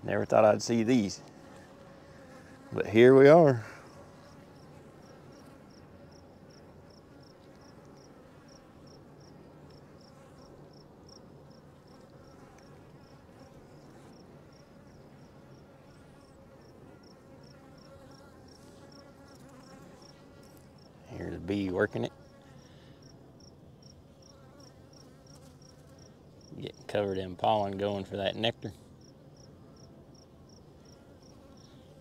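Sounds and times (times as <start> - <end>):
honeybees humming: 0.0 - 32.0.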